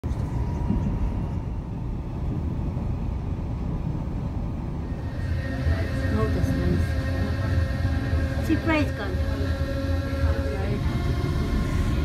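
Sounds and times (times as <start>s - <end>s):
moving vehicle low rumble: 0.0s - 12.0s.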